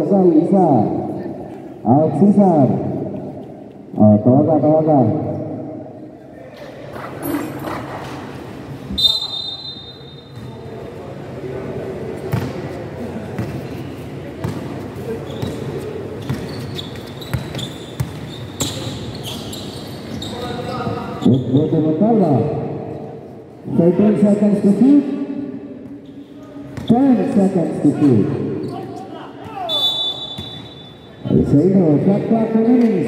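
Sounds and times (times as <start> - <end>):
short high whistle: 8.9 - 10.2
shoe squeaks: 8.9 - 10.6, 15.1 - 21.9, 28.6 - 31.2.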